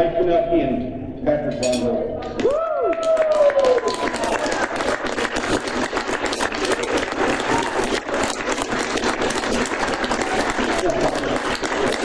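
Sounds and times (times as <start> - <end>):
voices in crowd: 0.0 - 12.0
audience clapping: 2.4 - 12.0.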